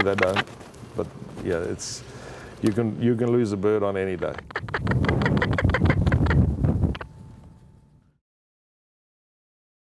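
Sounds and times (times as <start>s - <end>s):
falcon harsh kak calls: 0.0s - 0.6s, 4.2s - 7.1s
wind on microphone: 4.2s - 7.8s.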